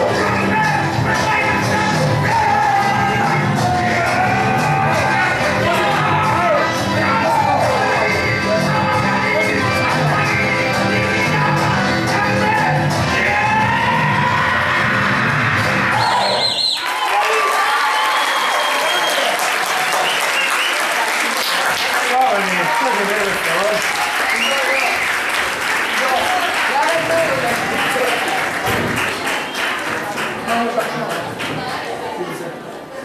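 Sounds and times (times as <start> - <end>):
dance music: 0.0 - 16.7
audience applauding: 14.3 - 32.5.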